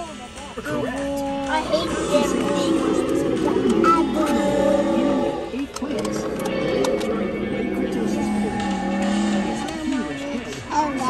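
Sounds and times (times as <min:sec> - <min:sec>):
music playing: 0:00.0 - 0:11.0
dinosaur roar sound effect: 0:01.4 - 0:10.2.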